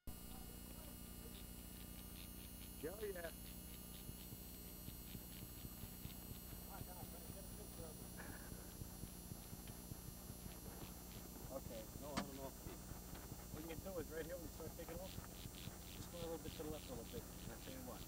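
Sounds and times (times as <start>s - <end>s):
steady low hum: 0.1s - 18.0s.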